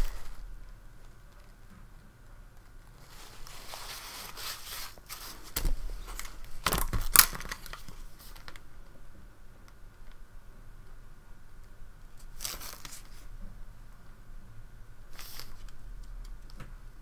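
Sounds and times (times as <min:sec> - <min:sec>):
paper towel crumpling: 0:00.0 - 0:00.5, 0:03.0 - 0:08.6, 0:12.2 - 0:13.3, 0:15.1 - 0:15.7.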